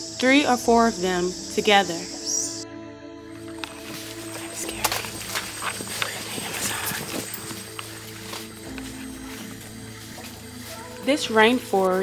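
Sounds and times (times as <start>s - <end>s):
background music: 0.0s - 12.0s
footsteps through undergrowth: 3.3s - 12.0s.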